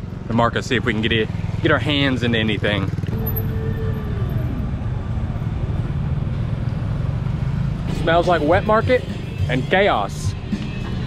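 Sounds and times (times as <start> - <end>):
motorcycle passing by: 0.0 - 9.7
street traffic rumble: 0.0 - 11.0.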